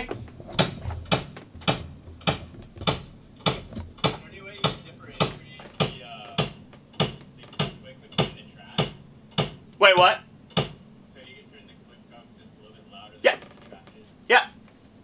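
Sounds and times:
kick drum hits: 0.0 - 10.8.

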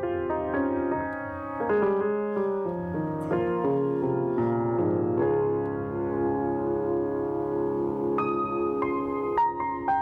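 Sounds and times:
solo grand piano classical piece: 0.0 - 10.0.

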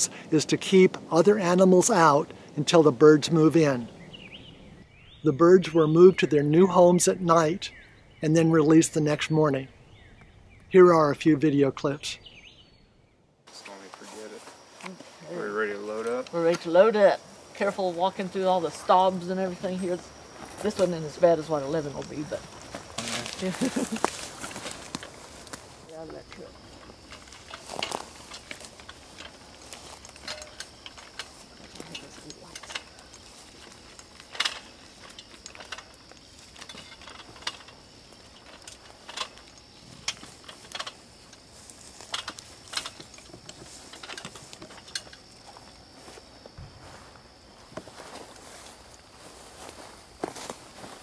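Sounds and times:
climbing gear clicks and clinks: 17.6 - 46.0
metal gear rattling: 27.0 - 45.7.

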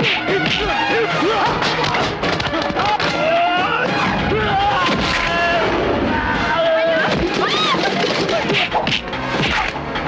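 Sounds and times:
background film score: 0.0 - 10.0
shouting: 0.1 - 8.5.

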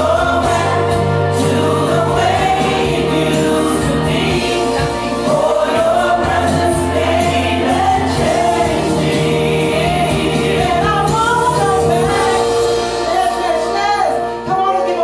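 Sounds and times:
backing chords and bass: 0.0 - 15.0
women singing gospel song: 0.0 - 15.0.

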